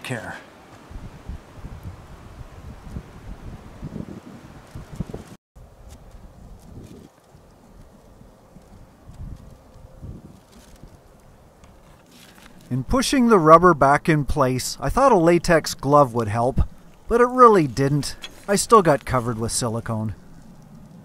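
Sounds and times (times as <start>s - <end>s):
wind rumble on microphone: 0.8s - 11.9s
light rustling: 4.6s - 12.8s, 16.6s - 21.0s.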